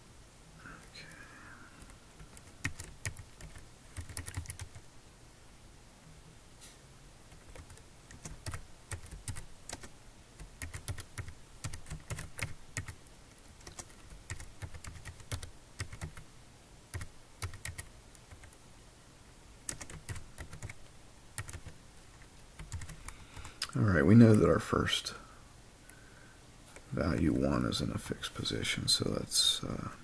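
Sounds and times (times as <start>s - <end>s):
computer keyboard typing: 1.8s - 4.8s, 7.3s - 13.0s, 13.6s - 16.2s, 16.9s - 18.6s, 19.7s - 20.8s, 21.4s - 23.5s.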